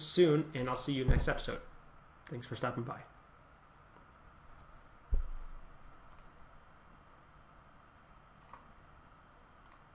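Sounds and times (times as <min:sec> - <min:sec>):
low thump: 0:01.0 - 0:01.7, 0:05.1 - 0:05.6
computer mouse clicks: 0:06.1 - 0:06.4, 0:08.4 - 0:08.8, 0:09.6 - 0:09.9.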